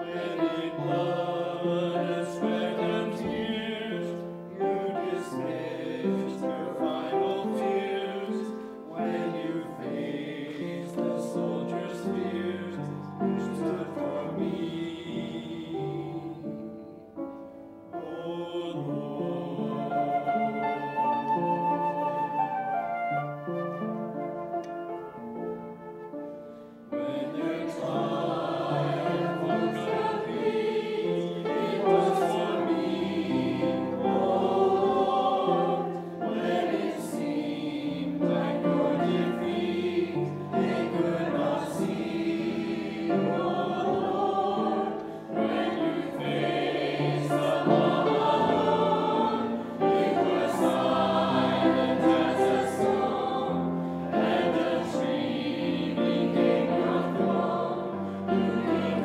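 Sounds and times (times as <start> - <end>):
choir singing a hymn: 0.0 - 59.0
piano accompaniment: 0.0 - 59.0.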